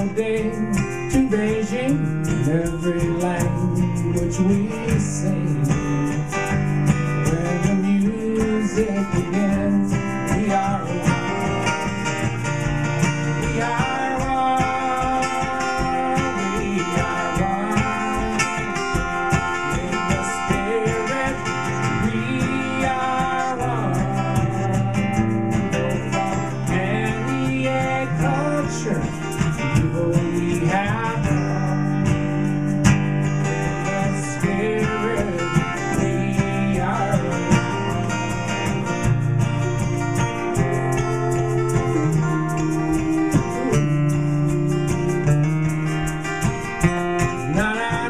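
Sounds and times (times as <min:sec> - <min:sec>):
acoustic guitar strummed: 0:00.0 - 0:48.0
wordless sung melody: 0:00.0 - 0:48.0.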